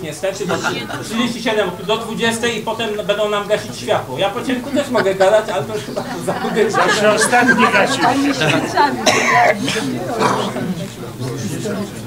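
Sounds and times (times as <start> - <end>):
low talk in room: 0.0 - 12.0
man coughing and clearing throat: 8.4 - 10.6.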